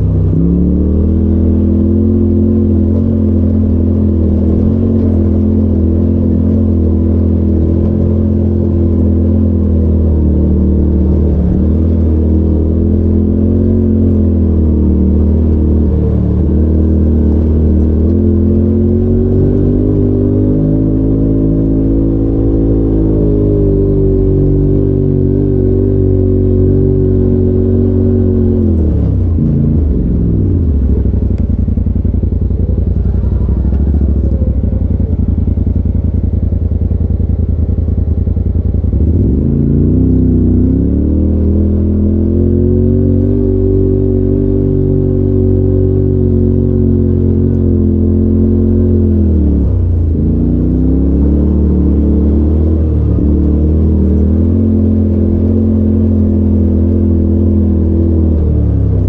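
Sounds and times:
vehicle engine under throttle: 0.0 - 59.0.

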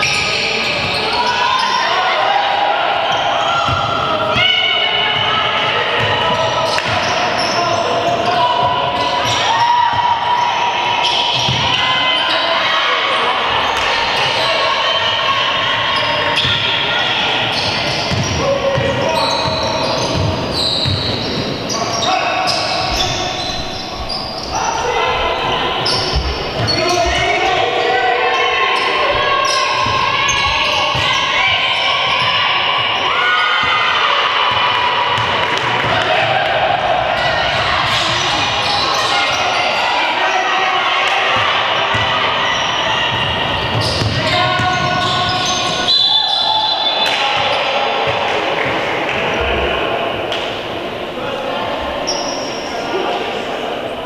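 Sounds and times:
players shouting: 0.0 - 54.0
basketball bouncing: 18.1 - 18.9.

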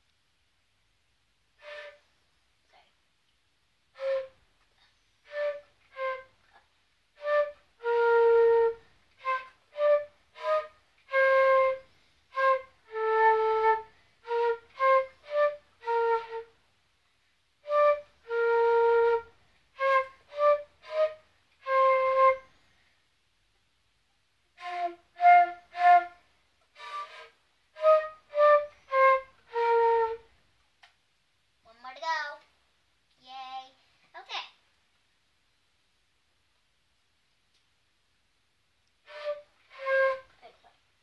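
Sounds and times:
flute melody: 1.6 - 2.1, 3.9 - 4.5, 5.2 - 6.5, 7.1 - 16.6, 17.6 - 22.6, 24.5 - 30.4, 39.0 - 40.4.

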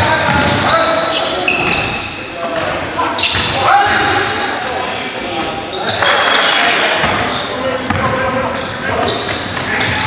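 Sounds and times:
players' voices: 0.0 - 10.0
sneakers squeaking: 0.0 - 10.0.

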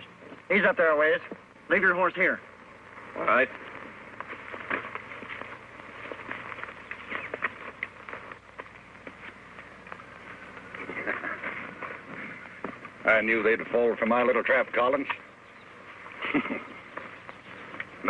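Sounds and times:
steady hiss: 0.0 - 18.0
footsteps crunching on gravel: 0.2 - 18.0.

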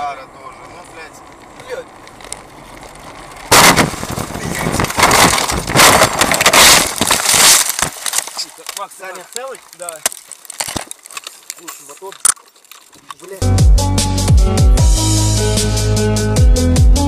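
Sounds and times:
crunching impacts and scraping: 0.5 - 13.8
car crash impact: 3.4 - 8.8
glass breaking: 3.5 - 13.0.

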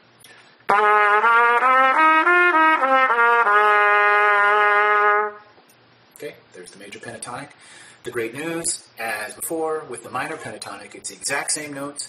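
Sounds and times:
trumpet playing a scale: 0.7 - 5.5.

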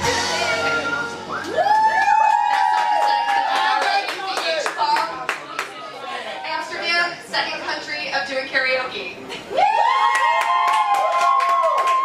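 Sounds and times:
high woo of cheering: 0.6 - 4.0, 9.5 - 12.0.

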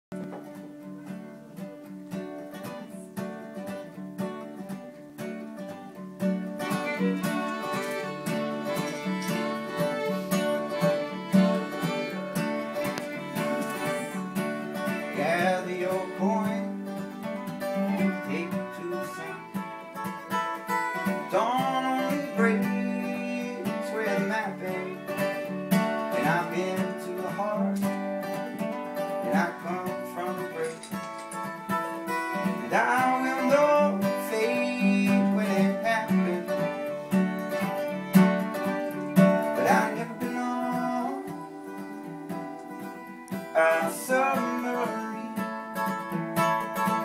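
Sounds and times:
acoustic guitar picking: 0.1 - 47.0
bowed violin with sliding notes: 6.6 - 16.6, 17.6 - 25.6, 30.2 - 40.6.

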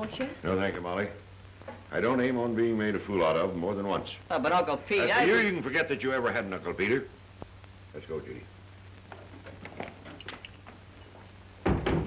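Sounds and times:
film soundtrack hum: 0.0 - 12.0
door slamming shut: 11.6 - 12.0.

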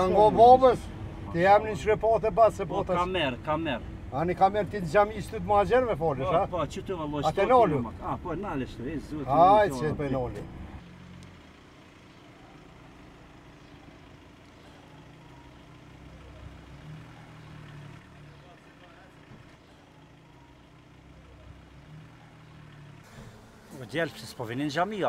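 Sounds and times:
car engine humming: 0.0 - 25.0
street background noise: 0.0 - 25.0.

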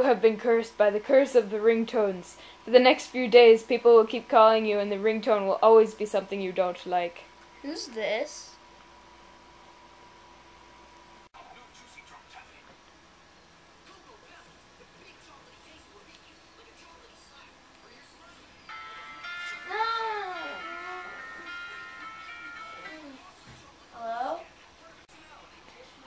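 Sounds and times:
faint hum: 0.0 - 26.0
phone ringtone song: 18.7 - 23.2.

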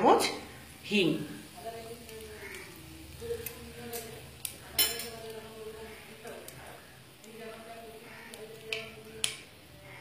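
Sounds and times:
oil sizzling in a pan: 0.0 - 10.0.

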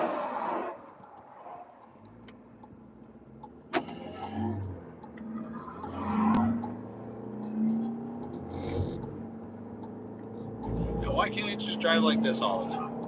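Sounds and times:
car engine and tyres drone: 0.0 - 13.0.

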